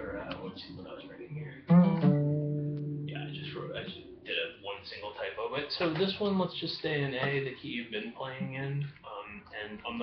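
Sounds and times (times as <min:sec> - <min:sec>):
acoustic guitar low notes plucked: 0:01.6 - 0:04.3.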